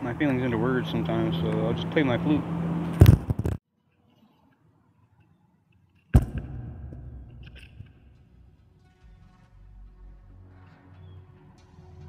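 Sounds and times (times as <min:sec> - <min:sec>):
microphone handling rustling: 0:03.0 - 0:03.6
sharp knock: 0:06.2 - 0:08.1.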